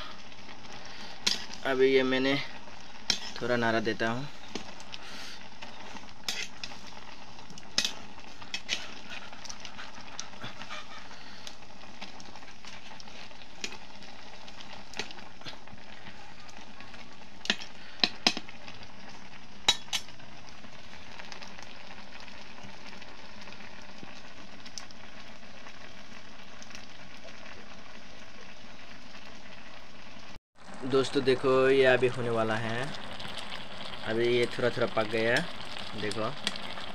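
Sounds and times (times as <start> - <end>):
beans sizzling in a pan: 0.0 - 36.9.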